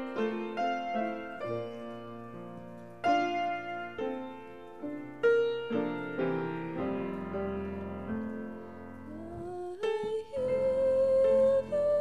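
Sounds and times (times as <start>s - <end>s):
grand piano chords: 0.0s - 12.0s
woman singing: 9.1s - 12.0s.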